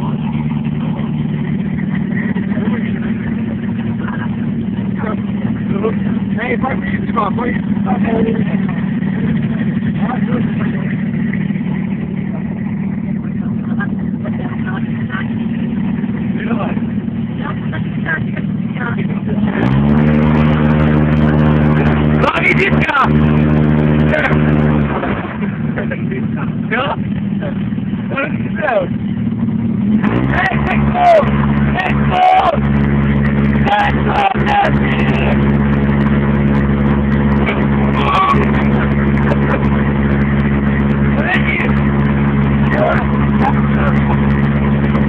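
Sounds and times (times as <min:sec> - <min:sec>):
people's voices: 0:00.0 - 0:29.1, 0:30.1 - 0:45.0
engine running and revving: 0:00.0 - 0:45.0.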